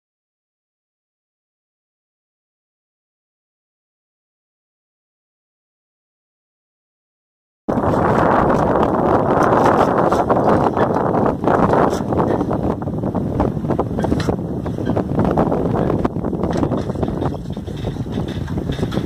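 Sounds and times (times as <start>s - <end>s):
wind blowing across microphone: 7.7s - 19.0s.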